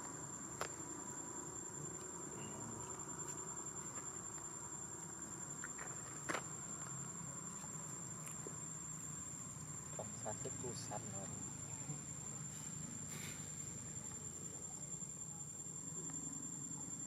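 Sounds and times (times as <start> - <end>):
insects droning: 0.0 - 17.0.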